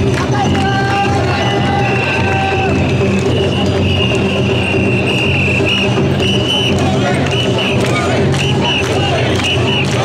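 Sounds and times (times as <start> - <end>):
street crowd din: 0.0 - 10.0.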